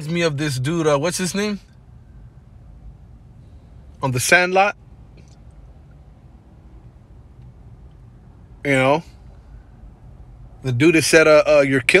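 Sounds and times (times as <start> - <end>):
faint low rumble: 0.0 - 12.0.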